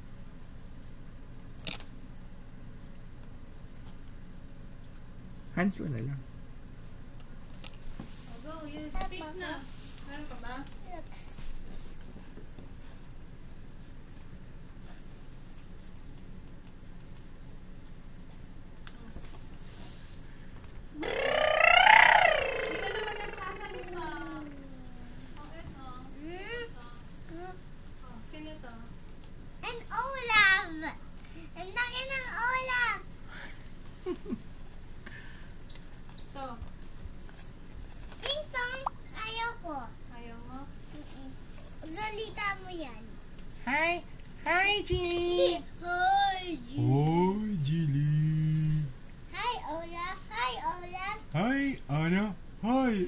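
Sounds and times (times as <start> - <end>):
child crying out: 21.0 - 24.8.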